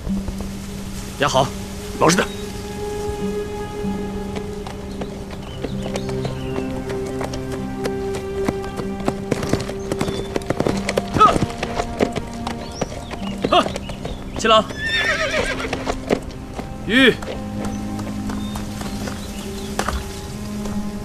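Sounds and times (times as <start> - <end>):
horse hooves clip-clopping: 0.0 - 21.0
musical score sustained notes: 0.0 - 21.0
horse whinnying: 11.1 - 11.6, 14.5 - 16.0.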